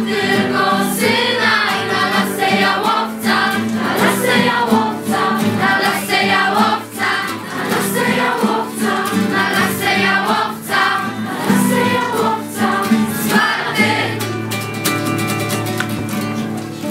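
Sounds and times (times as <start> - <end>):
children singing together: 0.0 - 14.4
acoustic guitar strumming: 0.0 - 16.9.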